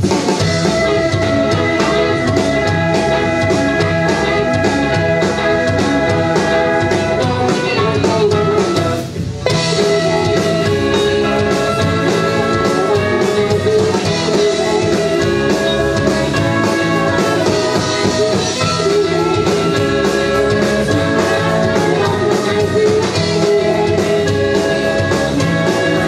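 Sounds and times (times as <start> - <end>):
rock band playing live: 0.0 - 26.0.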